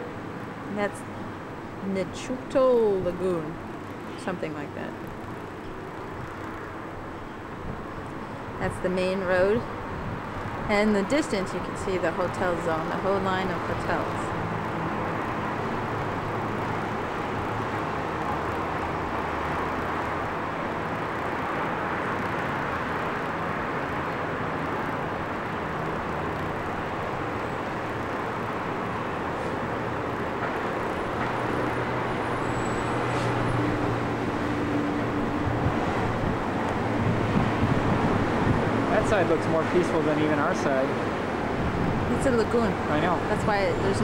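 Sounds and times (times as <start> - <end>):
road traffic noise: 0.0 - 44.0.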